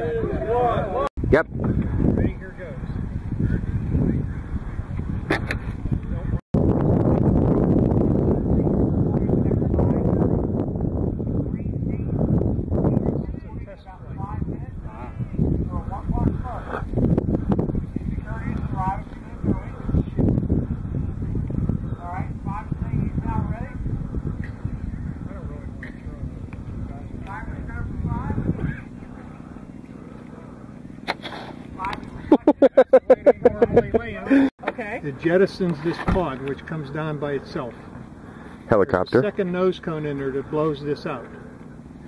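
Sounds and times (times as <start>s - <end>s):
wind rumbling on microphone: 0.0s - 31.0s
microphone handling noise: 3.2s - 8.3s.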